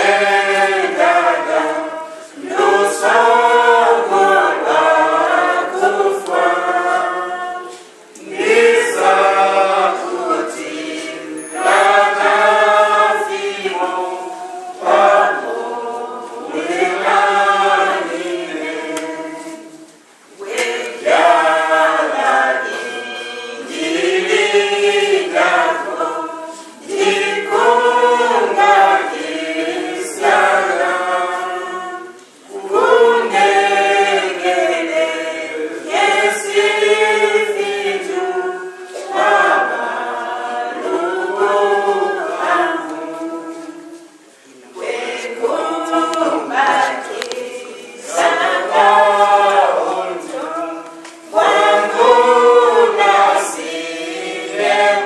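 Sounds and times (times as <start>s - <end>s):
voices singing a hymn unaccompanied: 0.0s - 55.0s.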